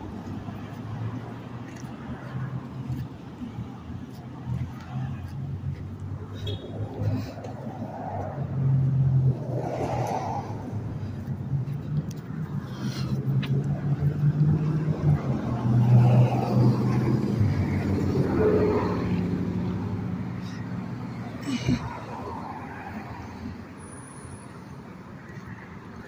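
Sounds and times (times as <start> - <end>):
car engines in traffic: 0.0 - 26.0.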